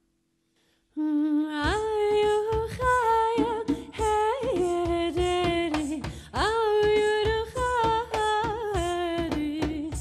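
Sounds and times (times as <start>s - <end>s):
woman singing wordless melody: 0.9s - 10.0s
hand drum strokes: 1.7s - 10.0s.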